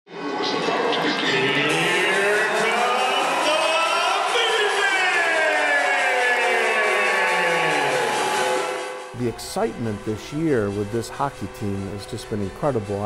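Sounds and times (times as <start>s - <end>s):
pitched tones sweeping downward: 0.8s - 4.4s.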